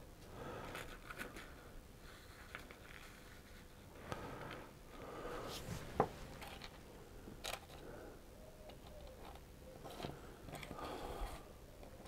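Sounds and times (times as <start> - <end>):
soft rustling: 5.0 - 6.8.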